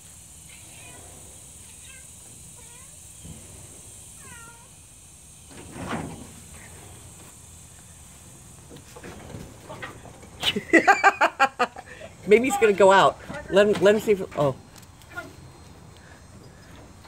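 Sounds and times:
cat chirping meows: 0:04.2 - 0:04.7.

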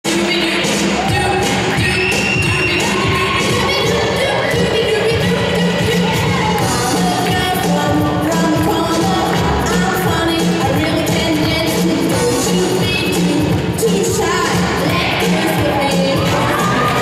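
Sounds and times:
person singing: 0:00.1 - 0:17.0
up-tempo jive music: 0:00.1 - 0:17.0.

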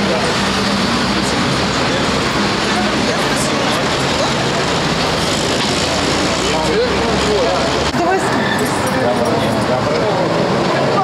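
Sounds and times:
people talking: 0:00.0 - 0:11.0
street traffic: 0:00.0 - 0:11.0.

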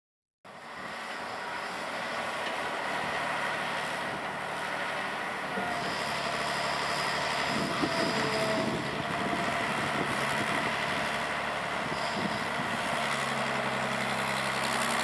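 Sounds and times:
excavator diesel engine and hydraulics: 0:00.5 - 0:15.0.

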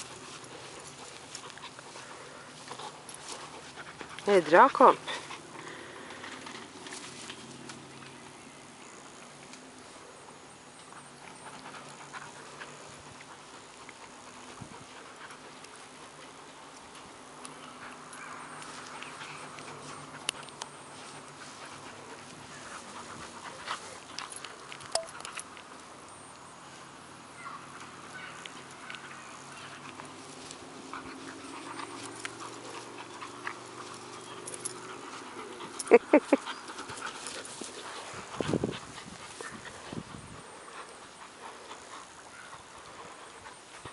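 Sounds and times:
rope toy clicks and rustles: 0:00.0 - 0:08.2
dogs scuffling on grass: 0:00.0 - 0:43.9
faint dog play sounds: 0:00.0 - 0:43.9.

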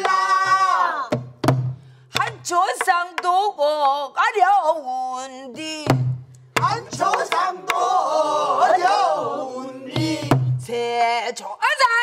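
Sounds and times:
barrel drum strikes booming: 0:01.2 - 0:01.8
woman singing: 0:02.2 - 0:06.0.

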